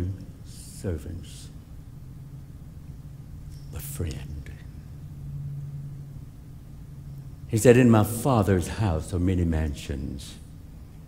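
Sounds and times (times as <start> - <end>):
faint background noise: 0.0 - 11.0
low steady hum: 0.0 - 11.0.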